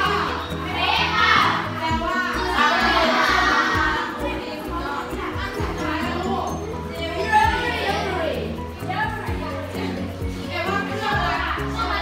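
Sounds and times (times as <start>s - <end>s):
children's voices together: 0.0s - 12.0s
music: 0.0s - 12.0s.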